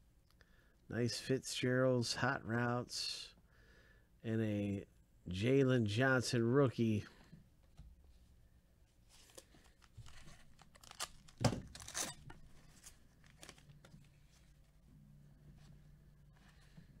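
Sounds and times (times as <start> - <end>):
cards rustling: 9.1 - 14.8
wrapper tearing and crinkling: 9.8 - 14.4.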